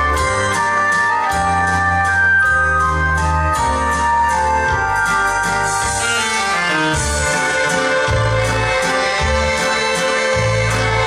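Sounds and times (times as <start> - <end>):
waltz music: 0.0 - 11.0.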